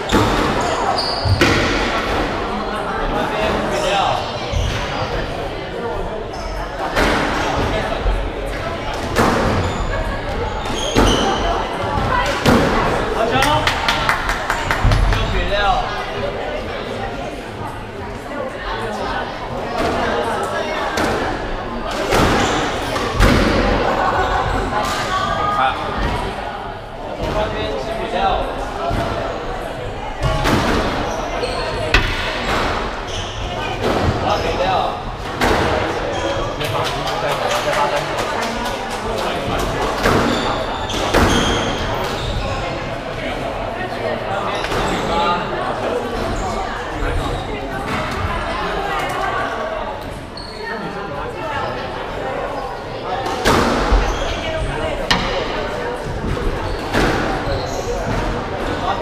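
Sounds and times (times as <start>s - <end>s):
shoe squeaks: 0.1s - 1.5s, 9.6s - 11.5s, 30.9s - 34.7s, 50.4s - 50.8s, 53.8s - 58.1s
voices murmuring: 15.0s - 59.0s
squash ball hits echoing: 30.2s - 34.3s, 53.4s - 57.4s
squash ball strikes: 31.9s - 33.1s, 55.0s - 57.3s.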